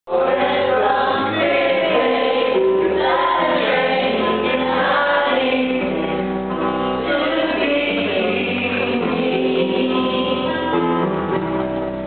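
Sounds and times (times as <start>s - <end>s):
group singing in chorus: 0.1s - 6.3s, 7.0s - 10.9s.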